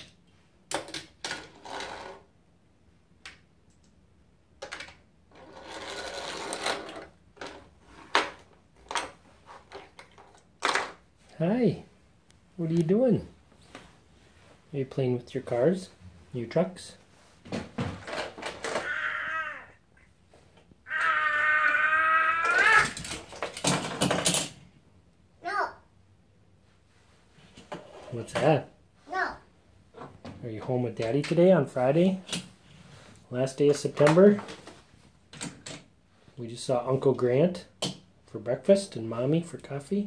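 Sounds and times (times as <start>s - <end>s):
toy car whirring: 5.3s - 7.1s
toddler squealing: 18.8s - 19.8s, 20.9s - 23.0s.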